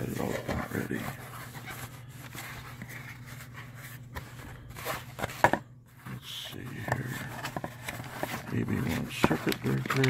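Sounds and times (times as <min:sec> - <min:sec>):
cardboard and plastic rustling: 0:00.0 - 0:10.0.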